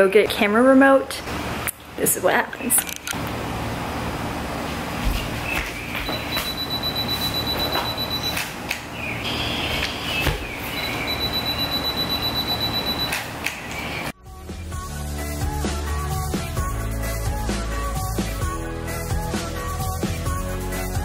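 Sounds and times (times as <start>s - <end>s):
footsteps: 4.7s - 6.6s
camera self-timer beeping: 6.1s - 8.4s, 10.8s - 13.2s.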